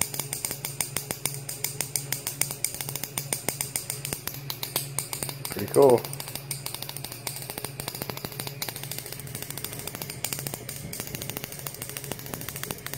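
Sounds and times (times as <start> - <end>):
steady low hum: 0.0 - 12.9
electrical sparks snapping: 1.5 - 12.9.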